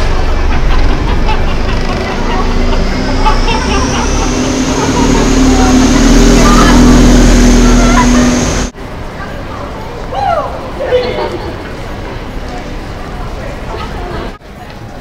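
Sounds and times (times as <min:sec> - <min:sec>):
vehicle engine hum: 0:00.0 - 0:09.9
passers-by talking: 0:00.0 - 0:15.0
traffic noise: 0:00.0 - 0:15.0.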